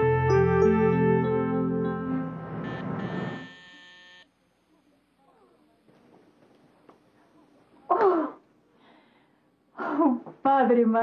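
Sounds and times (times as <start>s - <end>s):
electronic organ chord: 0.0s - 3.6s.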